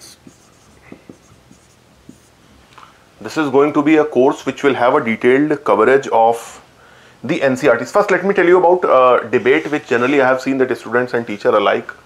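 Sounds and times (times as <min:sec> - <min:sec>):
marker pen writing on whiteboard: 0:00.0 - 0:02.4.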